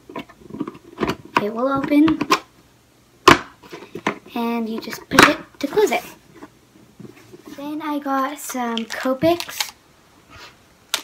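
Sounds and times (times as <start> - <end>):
plastic clicks: 8.4 - 9.8.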